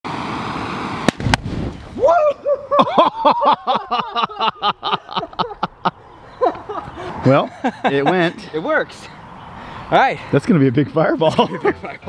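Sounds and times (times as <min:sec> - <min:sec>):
whoosh of burning gas: 0:00.1 - 0:02.1
balloon igniting with pops: 0:01.0 - 0:01.9
man laughing: 0:02.1 - 0:08.6, 0:11.2 - 0:12.0.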